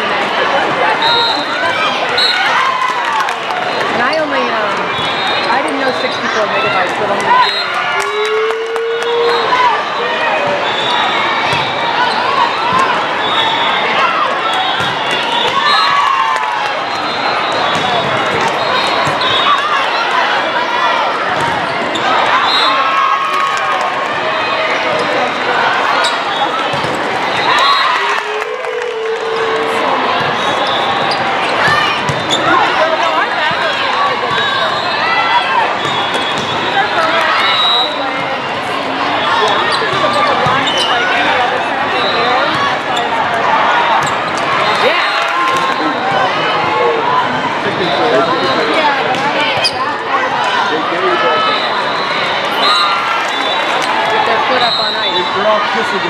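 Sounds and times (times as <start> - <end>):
crowd voices: 0.0 - 56.0
volleyballs hit and bouncing: 14.6 - 16.7, 17.6 - 19.7, 26.6 - 27.5.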